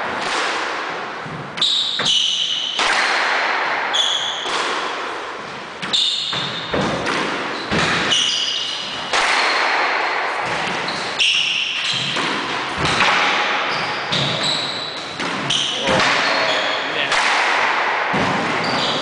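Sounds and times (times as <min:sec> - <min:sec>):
squash ball hitting rackets and walls: 0:00.0 - 0:19.0
shoes squeaking on wooden floor: 0:13.6 - 0:17.1.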